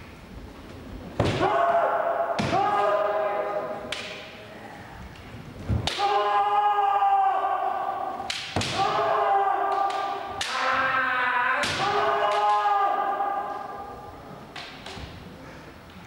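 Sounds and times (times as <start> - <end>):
long drawn-out shouts: 1.2 - 3.8, 5.8 - 14.2
bamboo sword strikes: 8.2 - 9.0.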